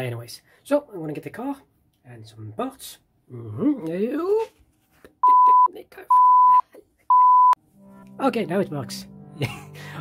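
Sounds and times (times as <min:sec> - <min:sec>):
censor bleep: 0:05.2 - 0:07.6.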